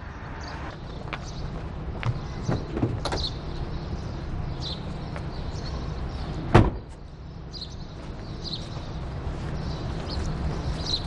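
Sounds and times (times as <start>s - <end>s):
low rumble: 0.0s - 0.8s.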